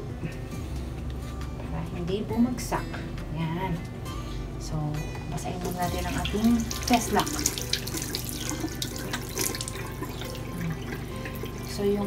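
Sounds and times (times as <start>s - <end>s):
water splashing on face: 5.9s - 10.9s.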